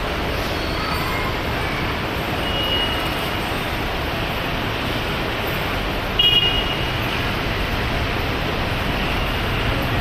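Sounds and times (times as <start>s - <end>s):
steady rushing noise: 3.0s - 10.0s.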